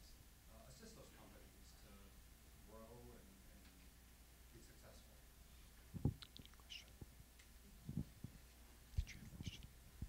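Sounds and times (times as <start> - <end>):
microphone handling thumps: 5.9 - 6.2, 7.8 - 8.4.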